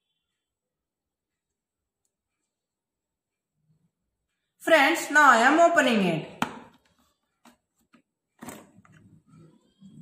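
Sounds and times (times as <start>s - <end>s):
plastic bottle handling: 6.4s - 9.6s.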